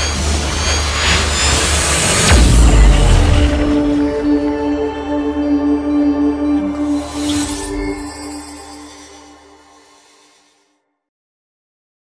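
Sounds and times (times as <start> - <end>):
deep bass drone: 0.0 - 9.5
swelling whoosh: 0.0 - 10.5
impact hit: 1.4 - 5.1.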